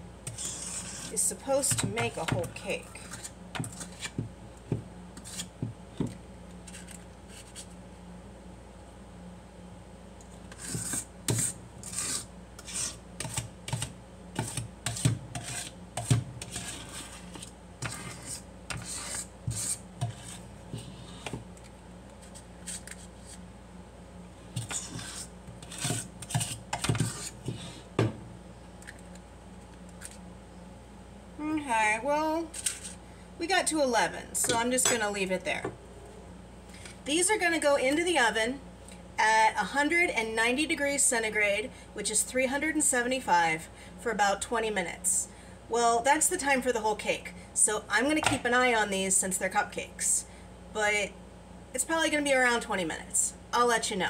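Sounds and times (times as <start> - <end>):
metal scoop scraping steel bowl: 0.3 - 4.1, 10.5 - 13.4.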